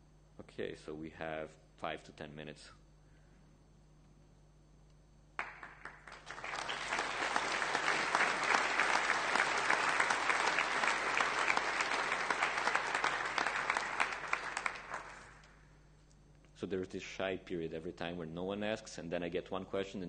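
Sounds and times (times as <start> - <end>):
audience applauding: 5.4 - 15.5.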